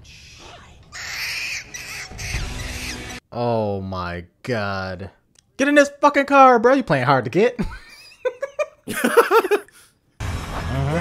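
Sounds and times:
monkey screeching: 0.0 - 3.2.

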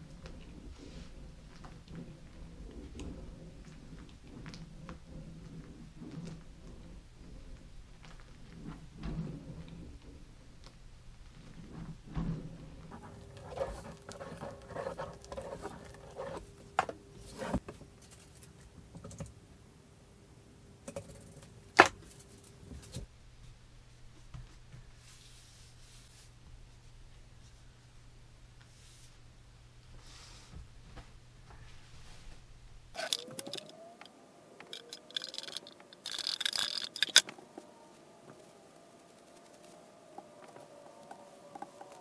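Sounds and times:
small clicks knocks and rattles: 33.0 - 37.4.

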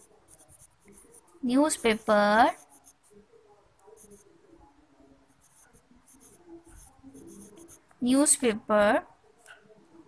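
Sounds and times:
pen scratching on paper: 0.0 - 7.9.

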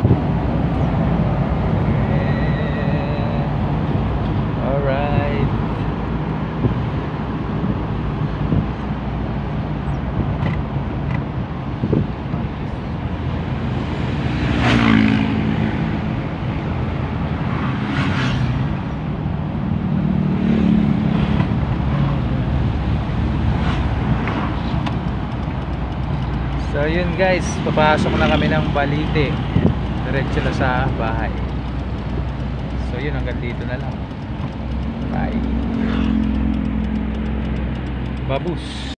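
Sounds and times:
car engine and road noise: 0.0 - 38.9.

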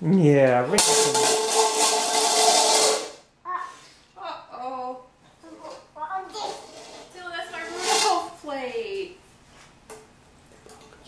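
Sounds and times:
plate rattling on tile floor: 0.7 - 3.2.

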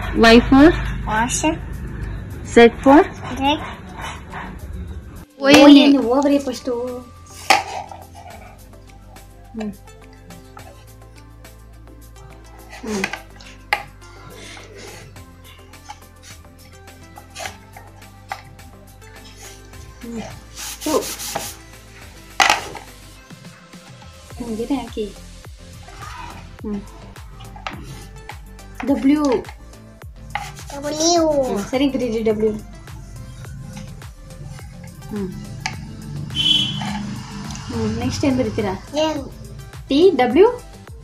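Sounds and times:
sharp scrape on slate: 7.3 - 8.5, 30.3 - 30.8, 36.5 - 37.6
hand rubbing chalk slate: 20.2 - 21.6, 30.3 - 32.1
toddler speaking: 25.9 - 26.5, 30.6 - 31.7, 38.9 - 39.4
adult speaking: 30.7 - 31.6.

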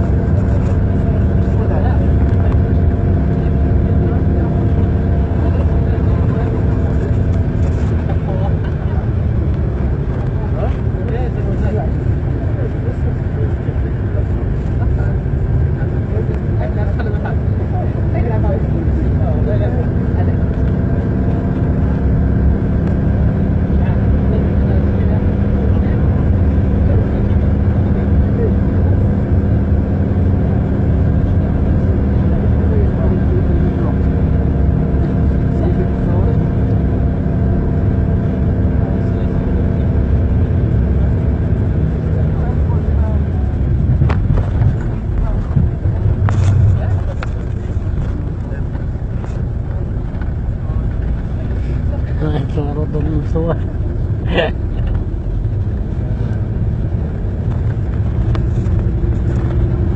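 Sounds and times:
road rumble: 0.0 - 59.9
vehicle engine running: 0.0 - 59.9.

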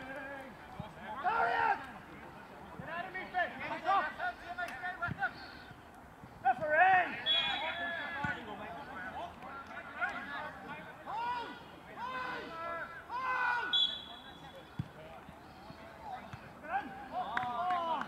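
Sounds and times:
footballers shouting: 0.0 - 2.1, 6.4 - 14.2.

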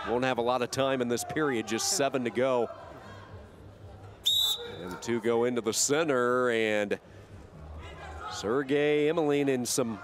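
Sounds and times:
faint background noise: 0.0 - 10.0
referee's whistle blast: 4.2 - 4.9.

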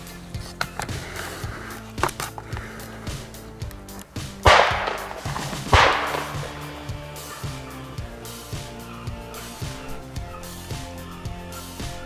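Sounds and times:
background music: 0.0 - 12.0
shotgun shots with echo: 4.4 - 7.4.

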